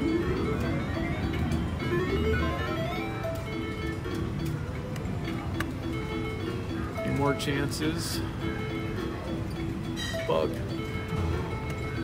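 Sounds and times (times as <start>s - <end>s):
plucked synthesized tune: 0.0s - 12.0s.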